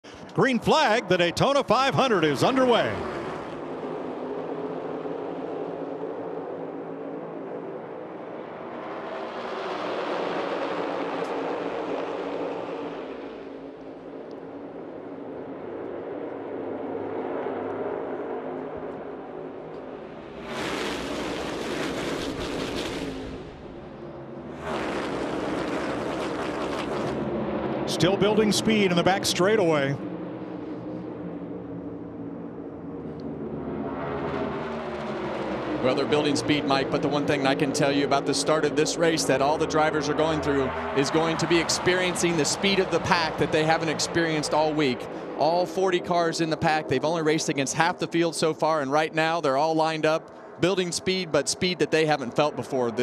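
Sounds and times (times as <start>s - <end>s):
race cars at full throttle: 0.0s - 53.0s.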